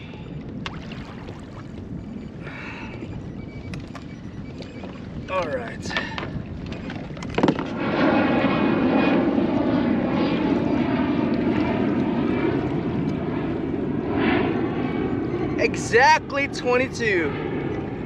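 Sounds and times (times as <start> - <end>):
engine drone with wavering hum: 0.0 - 18.0.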